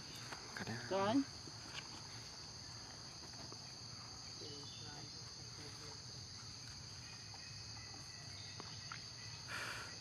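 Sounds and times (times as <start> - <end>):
insects droning: 0.0 - 10.0.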